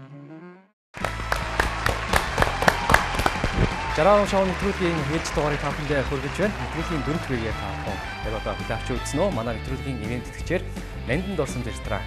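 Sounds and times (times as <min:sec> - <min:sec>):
people clapping rhythmically: 0:01.0 - 0:09.1
background music: 0:01.0 - 0:12.0.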